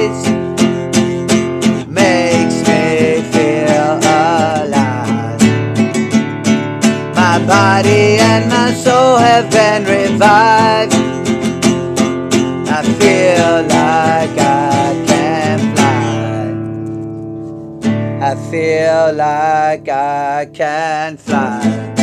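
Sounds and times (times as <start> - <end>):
man singing: 0.0 - 5.8, 6.9 - 16.8, 18.2 - 22.0
classical guitar strumming: 0.0 - 22.0.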